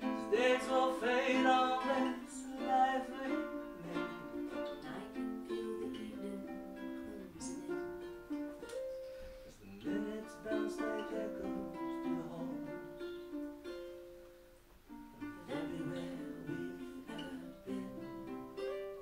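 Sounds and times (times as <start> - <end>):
ukuleles playing: 0.0 - 19.0.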